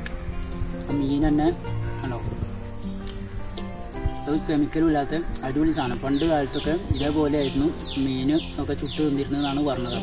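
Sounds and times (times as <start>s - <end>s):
crickets chirping chorus: 0.0s - 10.0s
soft background music: 0.0s - 10.0s.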